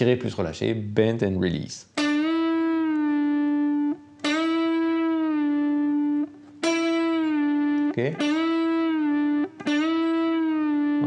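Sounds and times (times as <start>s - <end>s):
electric guitar string bends: 2.0s - 11.0s.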